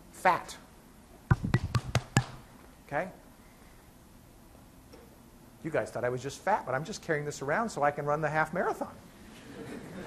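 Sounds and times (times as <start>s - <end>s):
hand slapping a belly: 1.3s - 2.4s.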